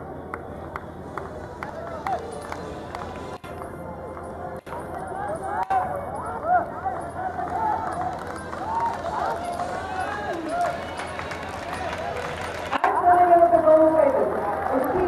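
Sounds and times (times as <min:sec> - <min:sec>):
crowd voices chattering: 0:00.0 - 0:15.0.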